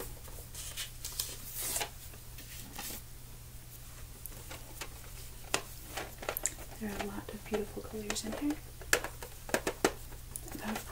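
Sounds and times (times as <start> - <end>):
pencil tin scraping and rustling: 4.4 - 10.9.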